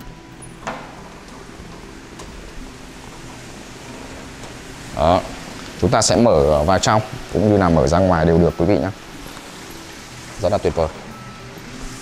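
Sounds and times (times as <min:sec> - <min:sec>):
door clicking open: 0:00.3 - 0:02.5.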